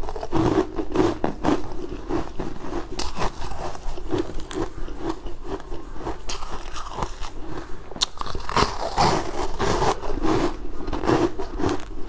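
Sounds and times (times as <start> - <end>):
crunching frozen ice: 0.0 - 12.0.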